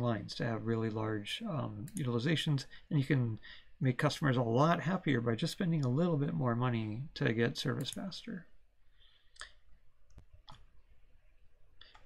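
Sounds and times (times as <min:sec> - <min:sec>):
faint mouse clicks: 0:01.8 - 0:02.1, 0:09.3 - 0:10.7, 0:11.8 - 0:12.0.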